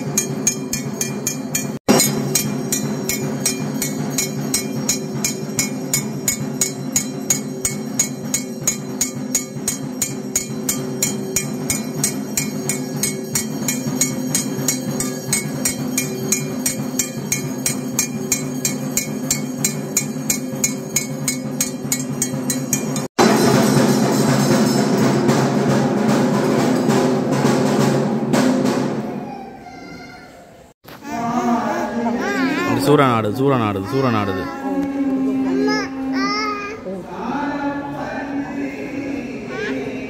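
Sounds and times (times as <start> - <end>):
rapid metallic strikes: 0.0 - 29.1.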